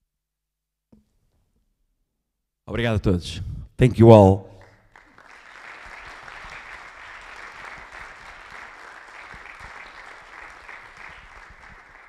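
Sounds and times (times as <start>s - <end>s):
audience applauding: 4.6s - 12.0s.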